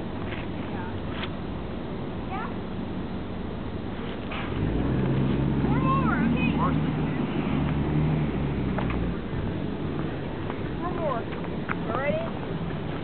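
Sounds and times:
street traffic: 0.0s - 13.0s
vehicle engine low hum: 0.0s - 13.0s.

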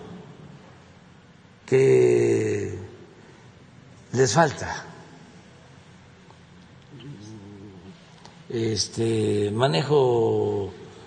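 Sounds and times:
man humming hesitantly: 6.9s - 8.2s.

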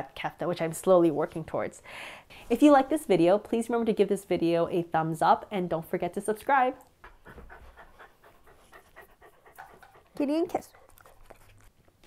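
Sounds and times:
dog panting: 7.0s - 11.7s.

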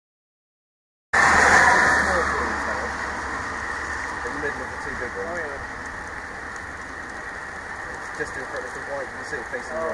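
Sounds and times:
rushing outdoor background noise: 1.2s - 9.9s
faint voices: 3.8s - 5.8s, 7.7s - 9.9s.

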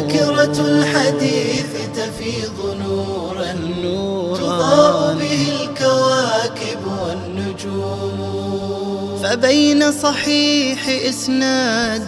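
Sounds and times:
low steady drone: 0.0s - 9.8s
person chanting a melody: 0.0s - 12.0s.

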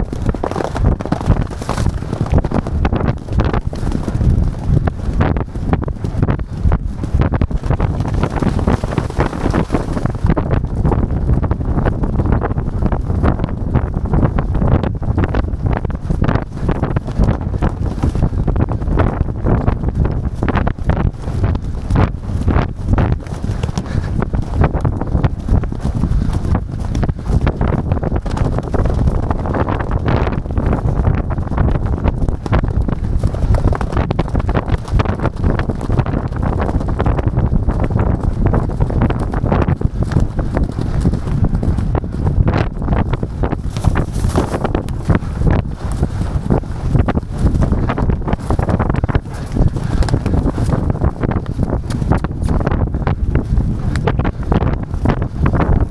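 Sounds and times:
horse hoofbeats galloping: 0.0s - 55.9s
other horses galloping: 0.0s - 55.9s
wind rumble on microphone: 0.0s - 55.9s.

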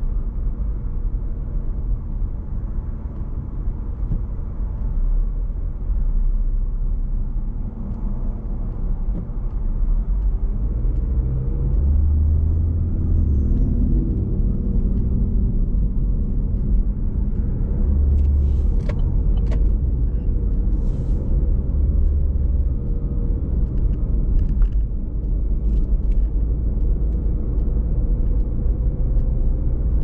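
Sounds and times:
car engine and tyre rumble: 0.0s - 30.0s.

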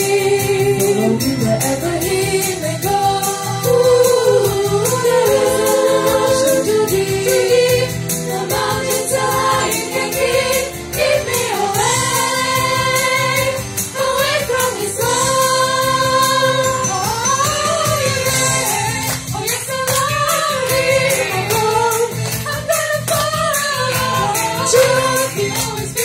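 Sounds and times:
accompaniment with steady beat: 0.0s - 26.0s
girls' choir singing: 2.4s - 26.0s.

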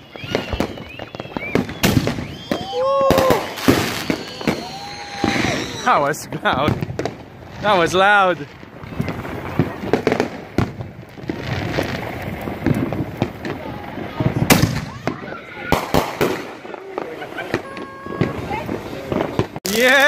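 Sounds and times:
fireworks bangs and crackling: 0.0s - 20.0s.

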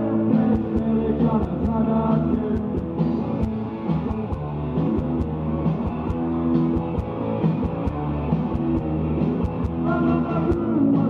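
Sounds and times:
bass guitar: 0.0s - 11.0s
electric guitars: 0.0s - 11.0s
steady drum beat: 0.3s - 11.0s.

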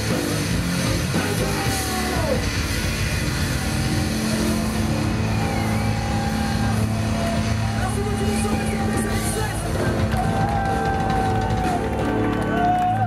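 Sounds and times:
distorted electric guitar drone: 0.0s - 13.0s.

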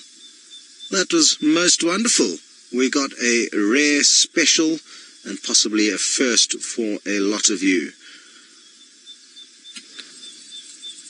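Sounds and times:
soft hiss: 0.0s - 11.0s
thin high pulsing tone: 8.5s - 11.0s
faint clicks: 9.7s - 10.8s.

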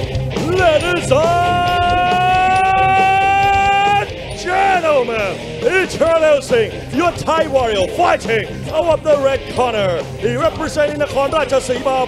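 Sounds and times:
entrance music: 0.0s - 12.0s
man shouting long vowel: 0.4s - 6.0s.

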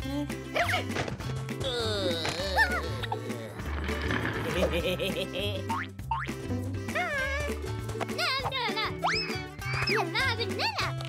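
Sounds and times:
cartoon music with bouncy bass: 0.0s - 11.0s.

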